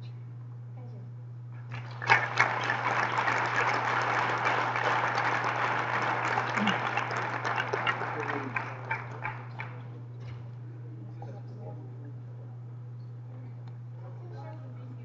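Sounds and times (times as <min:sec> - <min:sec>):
audience applauding: 0:01.7 - 0:09.9.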